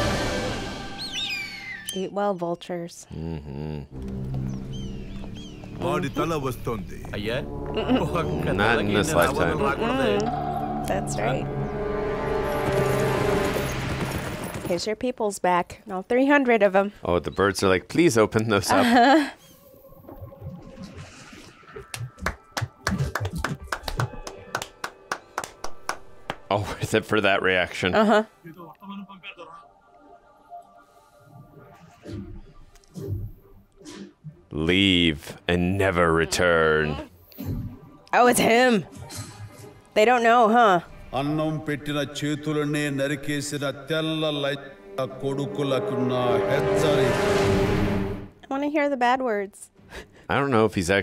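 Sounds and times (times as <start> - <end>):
film soundtrack music: 0.0 - 14.8, 17.0 - 48.9
bird screeching cry: 1.0 - 2.4
people clapping hands: 21.9 - 26.8.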